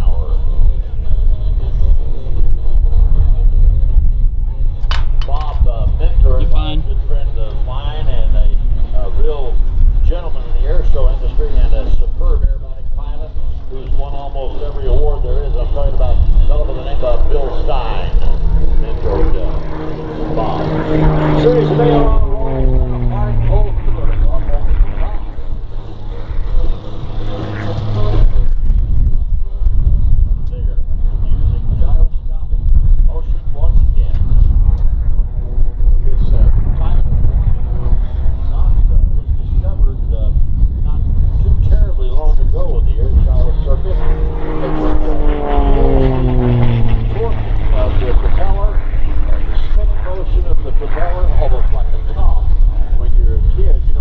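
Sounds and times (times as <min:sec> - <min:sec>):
plane engine droning overhead: 0:00.0 - 0:54.0
wind buffeting microphone: 0:00.0 - 0:54.0.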